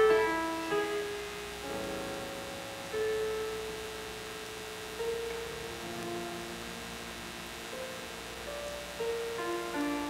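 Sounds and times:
soft piano notes: 0:00.0 - 0:10.0
steady mains hum: 0:00.0 - 0:10.0.

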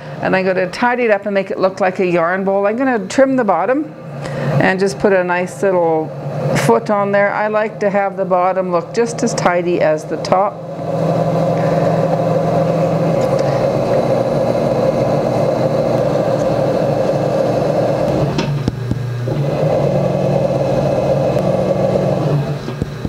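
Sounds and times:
potter's wheel motor hum: 0:00.0 - 0:23.0.

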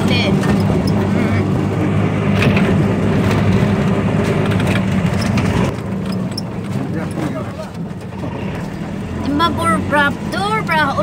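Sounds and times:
road noise: 0:00.0 - 0:11.0
vehicle engine running: 0:00.0 - 0:11.0
rattles and knocks: 0:02.3 - 0:08.9.

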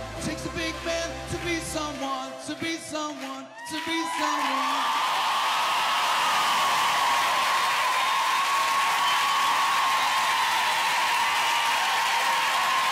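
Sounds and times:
audience applauding: 0:01.4 - 0:12.9.

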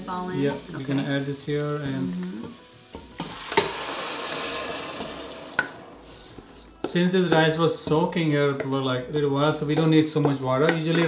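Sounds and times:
rice sizzling in hot oil: 0:00.0 - 0:11.0
wooden spoon scraping steel bowl: 0:03.3 - 0:11.0.

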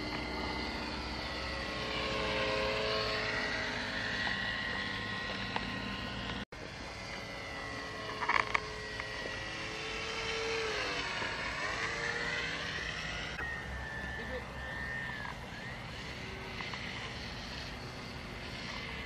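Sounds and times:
electric motor whine: 0:00.0 - 0:19.0.

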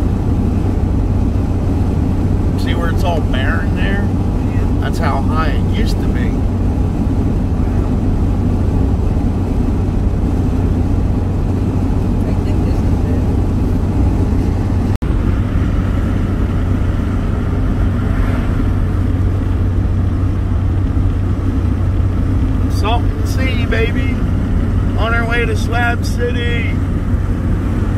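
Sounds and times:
van engine and road noise: 0:00.0 - 0:27.9.

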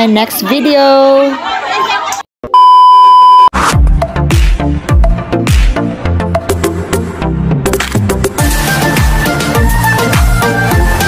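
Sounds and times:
electronic beep: 0:02.5 - 0:03.5
electronic dance music: 0:08.4 - 0:11.0.

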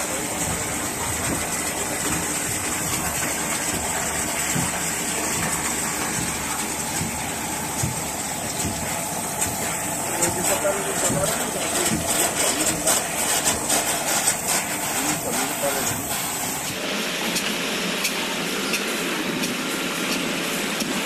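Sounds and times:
small pump motor running: 0:00.0 - 0:21.0
water pouring into tank: 0:00.0 - 0:21.0.

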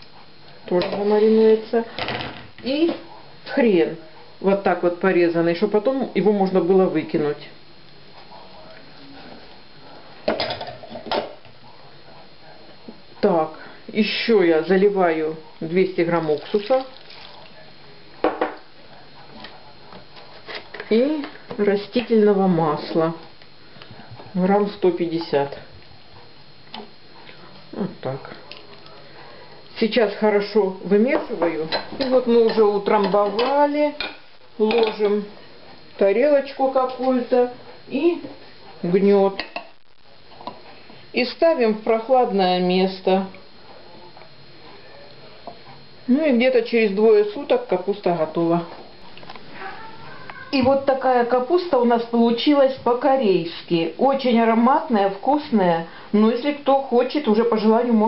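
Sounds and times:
faint room noise: 0:00.0 - 0:58.0
cup knocking on table: 0:18.2 - 0:18.6.

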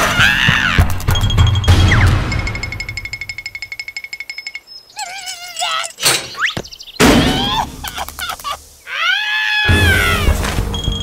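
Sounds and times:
cartoon creature voices squawking: 0:05.0 - 0:10.4.

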